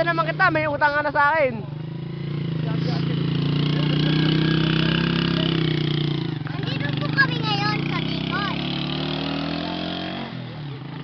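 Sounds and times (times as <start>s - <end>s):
small motorcycle engine humming: 0.0s - 11.0s.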